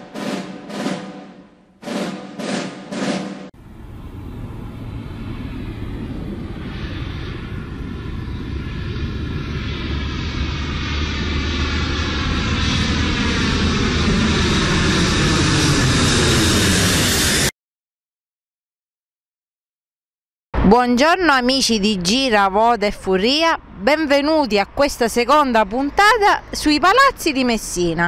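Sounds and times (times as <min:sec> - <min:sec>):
drum stroke: 0:00.0 - 0:03.5
aircraft engine noise: 0:03.5 - 0:17.5, 0:21.0 - 0:28.0.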